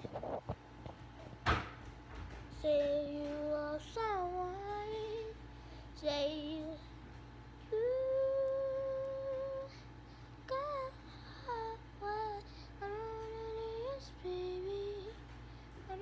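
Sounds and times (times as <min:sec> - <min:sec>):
girl singing: 0:02.5 - 0:07.0, 0:07.6 - 0:16.0.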